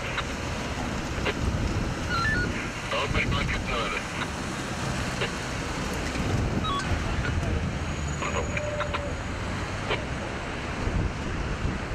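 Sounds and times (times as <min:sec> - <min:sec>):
road traffic passing: 0:00.0 - 0:11.9.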